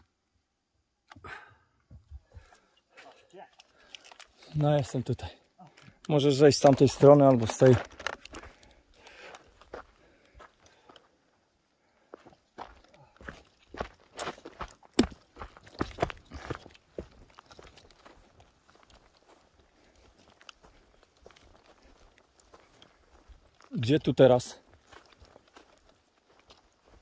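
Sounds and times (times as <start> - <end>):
footsteps on grass: 6.4 - 11.0, 12.1 - 27.0.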